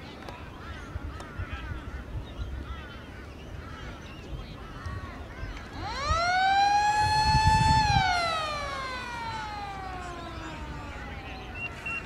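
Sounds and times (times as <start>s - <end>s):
motor-driven siren winding: 5.7s - 12.0s.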